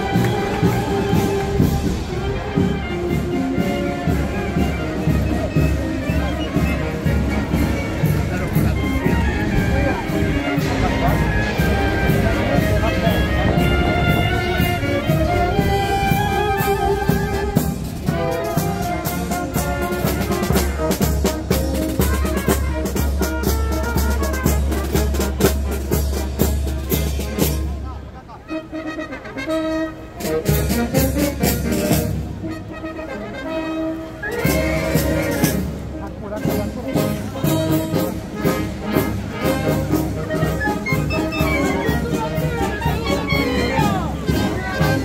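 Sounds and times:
brass band playing a march: 0.0s - 45.0s.

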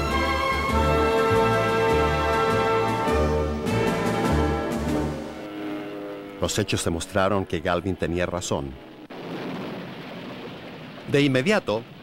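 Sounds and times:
rumbling explosion roar: 9.1s - 12.0s.

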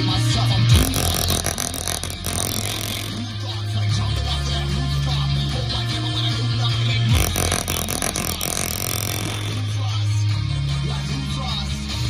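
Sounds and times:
rap song on loudspeaker: 0.0s - 1.7s, 2.4s - 8.1s, 8.7s - 12.0s.

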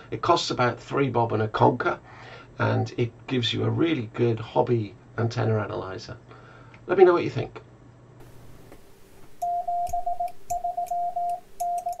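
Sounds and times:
morse code beeps: 9.4s - 12.0s.

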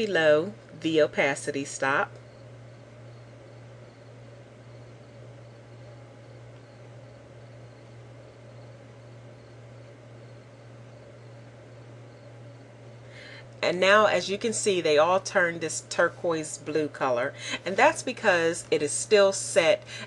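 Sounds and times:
low electrical hum with hiss: 0.0s - 20.0s.

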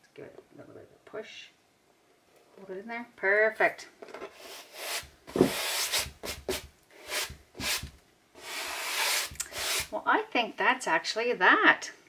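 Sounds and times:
hands rubbing over canvas: 4.4s - 9.9s.

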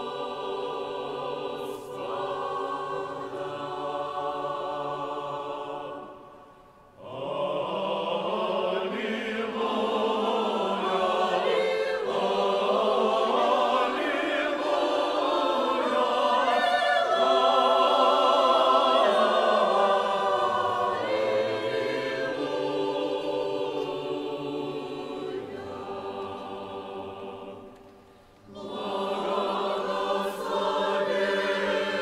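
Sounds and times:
church choir singing: 0.0s - 32.0s.

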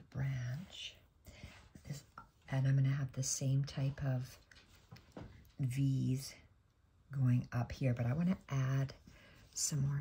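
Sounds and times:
woman speaking softly: 0.0s - 1.1s, 1.8s - 4.5s, 5.5s - 6.5s, 7.1s - 9.0s, 9.6s - 10.0s.

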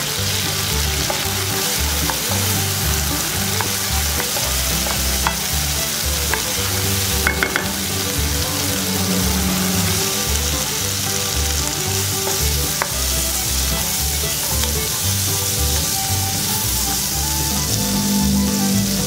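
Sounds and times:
food sizzling in hot oil: 0.0s - 19.0s
spatula knocking against pan: 3.5s - 5.6s, 6.3s - 6.6s, 7.2s - 7.8s.

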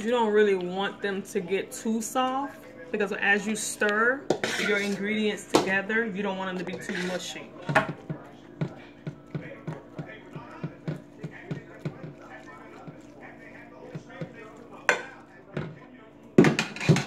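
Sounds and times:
spoon knocking on salad and dish: 7.6s - 13.1s, 13.8s - 15.8s.

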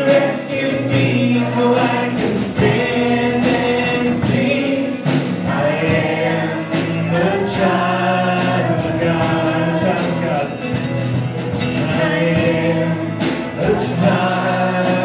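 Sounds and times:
acoustic guitar: 0.0s - 15.0s
drums keeping a steady beat: 0.0s - 15.0s
keyboard: 0.0s - 15.0s
people singing: 0.0s - 15.0s.

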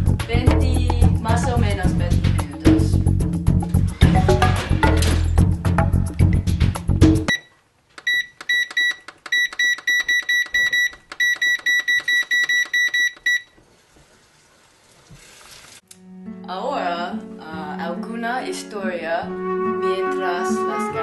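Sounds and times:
music with bass beat: 0.0s - 7.3s
keypad beeping: 7.3s - 13.5s.

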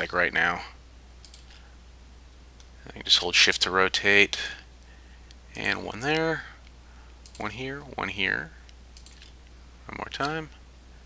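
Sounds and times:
low electrical hum: 0.0s - 11.0s
computer mouse clicks: 1.2s - 1.6s, 5.2s - 7.5s, 8.6s - 9.4s.

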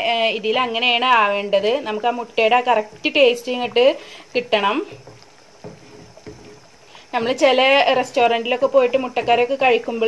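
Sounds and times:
wooden spatula stirring thick curry: 1.8s - 10.0s.

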